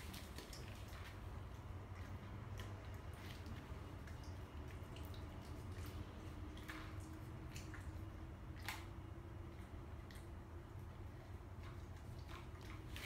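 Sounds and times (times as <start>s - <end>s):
dog chewing: 0.0s - 13.0s.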